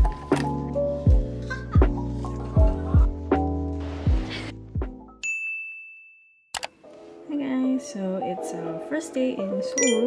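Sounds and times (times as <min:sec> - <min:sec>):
background music: 0:00.0 - 0:05.2, 0:06.7 - 0:10.0
bright ding chime: 0:09.8 - 0:10.0.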